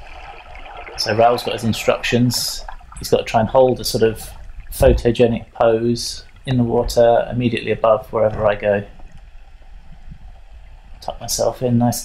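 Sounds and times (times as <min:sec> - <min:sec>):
muffled underwater rumble: 0:00.0 - 0:12.0
water gurgling: 0:00.0 - 0:12.0.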